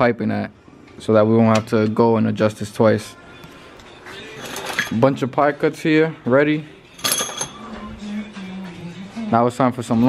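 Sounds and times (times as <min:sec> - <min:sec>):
metal pipes clinking: 0:04.4 - 0:05.0, 0:06.9 - 0:07.8.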